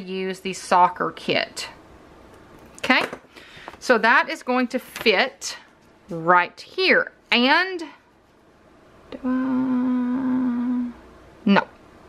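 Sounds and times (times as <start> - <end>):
short vocal sound: 9.1 - 11.1
woman humming: 9.1 - 11.1.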